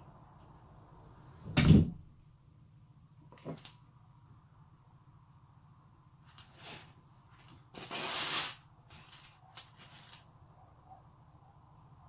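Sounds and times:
loud plastic rustle: 6.3s - 10.3s.

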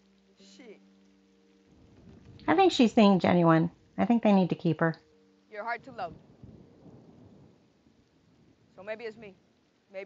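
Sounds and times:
distant thunder rumble: 1.7s - 5.0s, 5.6s - 9.8s.

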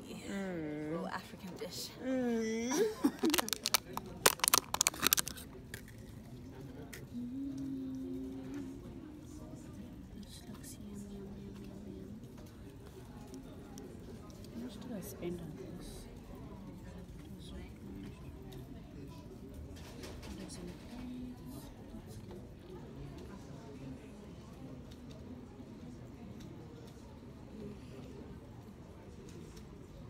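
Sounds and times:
faint voices murmuring: 0.0s - 30.0s
woman humming: 2.0s - 3.0s, 7.0s - 9.6s
plastic tub clicking: 3.1s - 5.9s.

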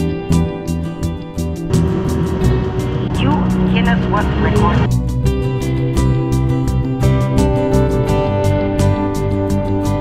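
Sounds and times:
background music: 0.0s - 10.0s
engine revving at high speed: 1.6s - 4.9s.

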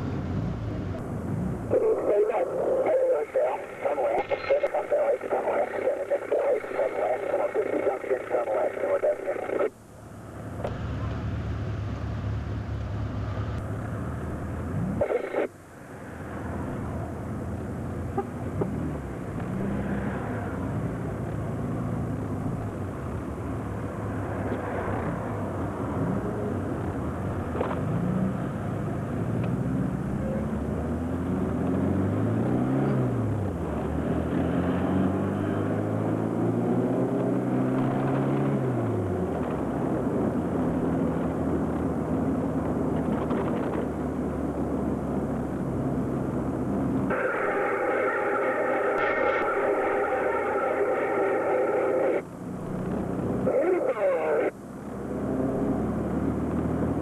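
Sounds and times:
road noise: 0.0s - 57.0s
car engine accelerating: 16.1s - 57.0s.

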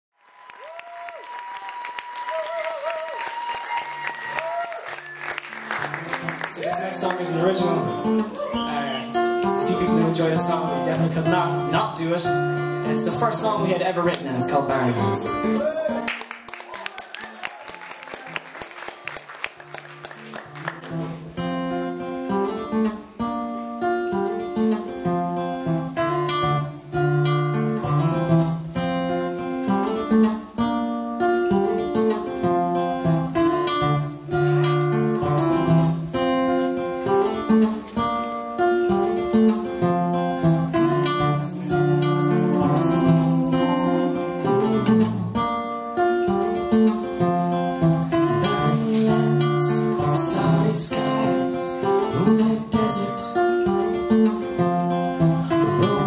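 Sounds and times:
acoustic guitar strumming chords: 5.4s - 16.5s, 19.0s - 56.0s.

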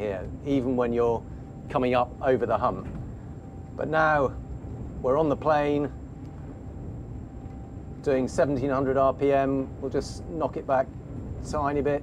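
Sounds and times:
diesel engines low drone: 0.0s - 12.0s.

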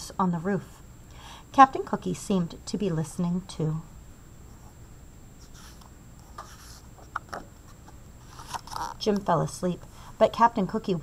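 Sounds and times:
page turning rustle: 5.5s - 9.2s.

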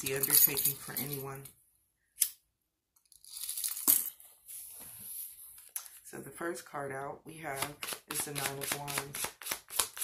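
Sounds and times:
cards being shuffled: 7.5s - 10.0s.

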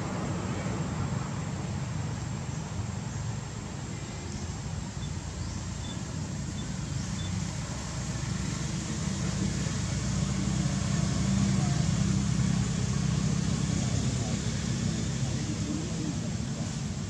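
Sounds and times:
vehicle engine running: 0.0s - 17.0s.

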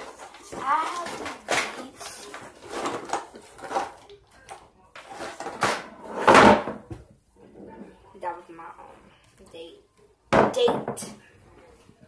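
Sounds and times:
objects knocking and clattering: 0.0s - 7.1s.

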